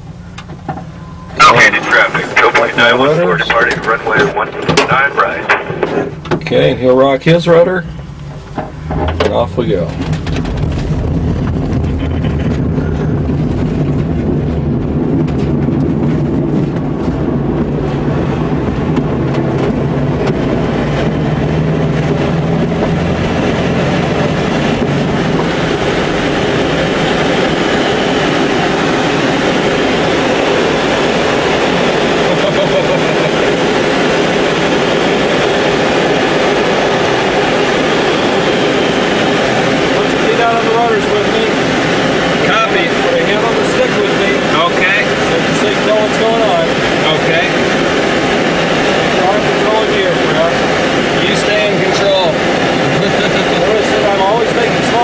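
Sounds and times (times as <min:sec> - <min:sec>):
rush of air over canopy: 0:00.0 - 0:55.0
tow plane engine: 0:00.0 - 0:55.0
wheel rumbling over ground: 0:00.0 - 0:55.0.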